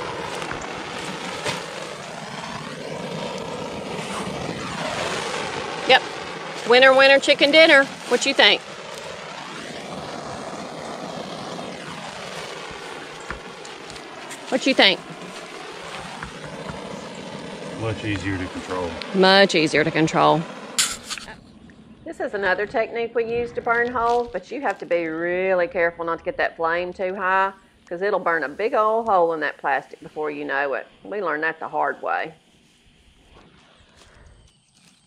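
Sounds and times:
torch flame hissing: 0.0s - 21.4s
man talking: 17.8s - 19.0s.

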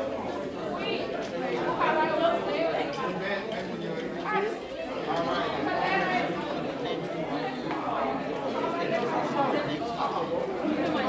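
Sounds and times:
chatter of overlapping voices: 0.0s - 11.0s.

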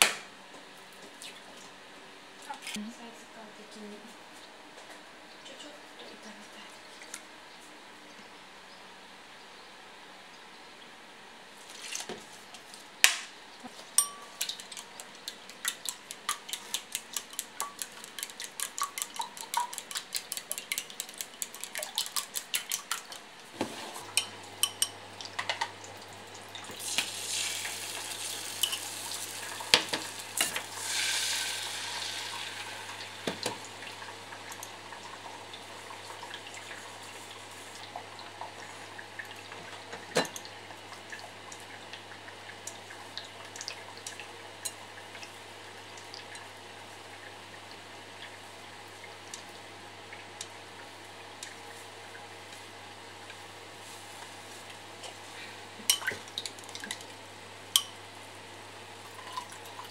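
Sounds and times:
egg sizzling in frying pan: 26.6s - 38.5s.

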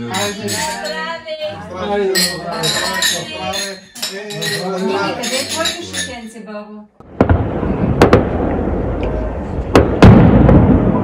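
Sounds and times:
low rumble of firework bursts: 7.0s - 11.0s.

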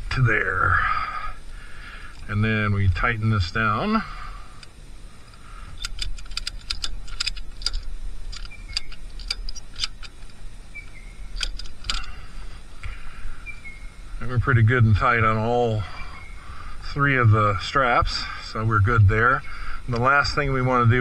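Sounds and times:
ratchet strap clicking: 5.3s - 12.2s.

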